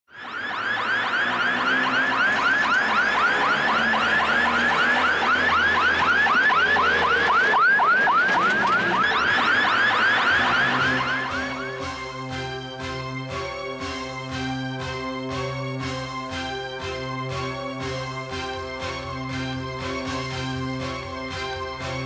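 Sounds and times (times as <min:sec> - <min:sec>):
electronic siren yelping: 0:00.1 - 0:12.1
low background music: 0:00.2 - 0:22.0.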